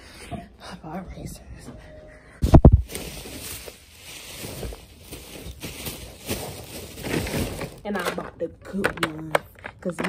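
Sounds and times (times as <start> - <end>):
plastic bag crinkling: 2.8 - 8.4.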